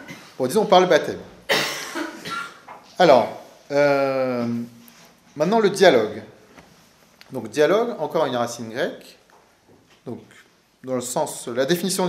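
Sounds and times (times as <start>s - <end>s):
person coughing: 0.0s - 0.4s, 1.5s - 2.6s.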